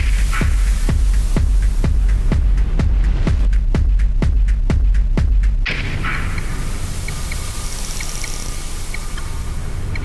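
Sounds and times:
hissing electronic wash: 0:00.0 - 0:03.3, 0:05.8 - 0:10.0.

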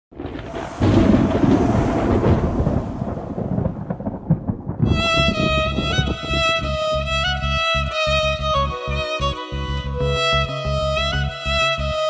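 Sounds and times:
thunder rumbling: 0:00.1 - 0:08.6.

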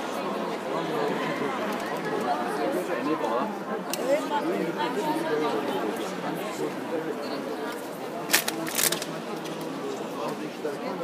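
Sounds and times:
indistinct chatter of voices: 0:00.0 - 0:11.0.

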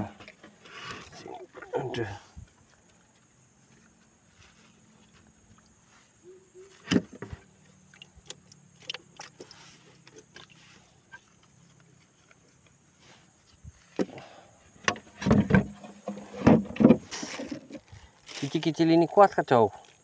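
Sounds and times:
thumps against canoe hull: 0:14.8 - 0:17.6
handling knocks in a canoe: 0:14.8 - 0:17.8.

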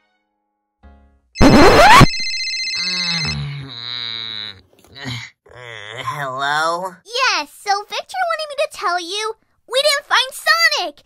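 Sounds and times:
toy phone ringing: 0:02.1 - 0:03.4.

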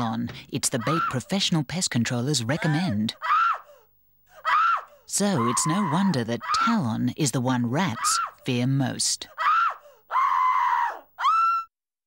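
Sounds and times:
cartoon rat screaming: 0:00.8 - 0:01.2, 0:02.6 - 0:03.8, 0:04.4 - 0:06.8, 0:07.8 - 0:08.4, 0:09.4 - 0:11.7.

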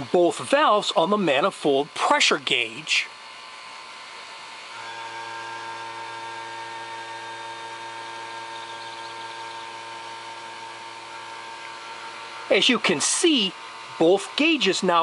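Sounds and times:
vacuum pump humming: 0:00.0 - 0:15.0.

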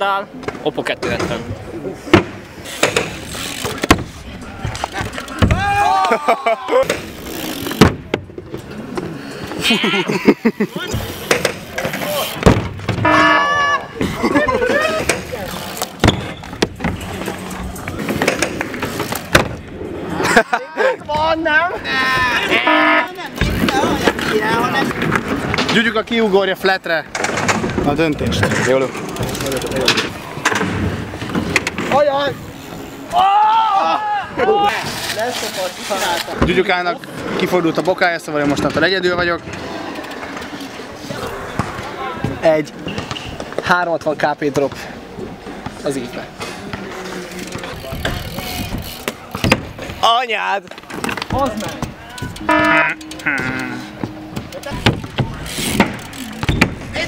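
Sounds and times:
people talking and laughing: 0:00.0 - 0:57.0.

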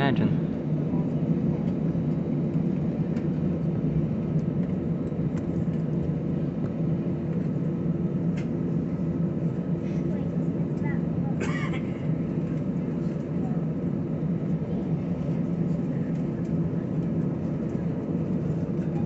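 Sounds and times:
airliner engines humming: 0:00.0 - 0:19.0.

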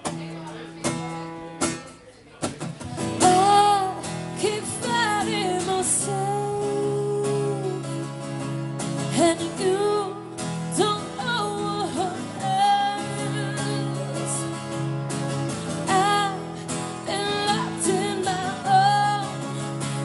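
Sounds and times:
acoustic guitar strumming: 0:00.0 - 0:20.0
woman singing: 0:03.2 - 0:08.3, 0:09.0 - 0:14.8, 0:15.6 - 0:20.0.

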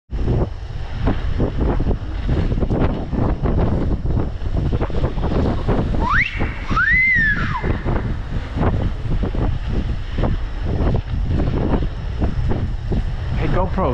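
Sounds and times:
wind buffeting microphone: 0:00.1 - 0:13.9.

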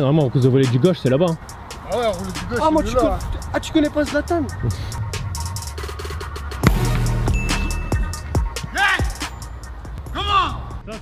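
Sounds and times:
background music with drum beat: 0:00.0 - 0:11.0
rising and falling pitched sound: 0:04.5 - 0:08.6
sharp hit: 0:06.6 - 0:08.6.

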